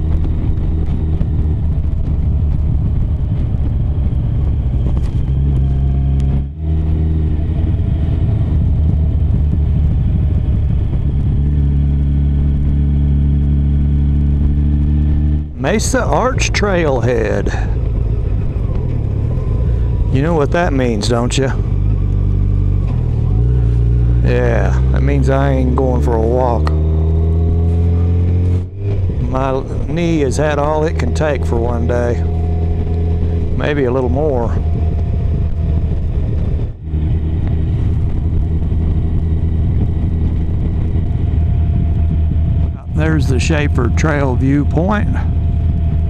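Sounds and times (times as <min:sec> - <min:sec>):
motorcycle engine cruising: 0:00.0 - 0:46.0
road noise: 0:00.0 - 0:46.0.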